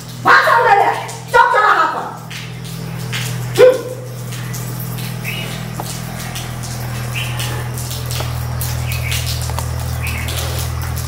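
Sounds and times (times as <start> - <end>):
low hum: 2.1 - 11.0.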